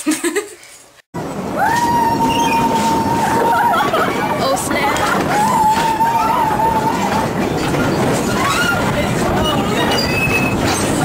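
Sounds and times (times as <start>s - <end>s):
train rumble and clatter: 1.2s - 11.0s
wavering voices: 1.6s - 11.0s.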